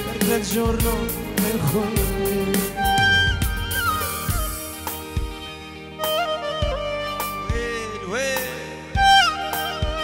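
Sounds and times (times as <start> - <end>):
ornamented instrumental melody: 0.0 - 10.0
steady bass: 0.0 - 10.0.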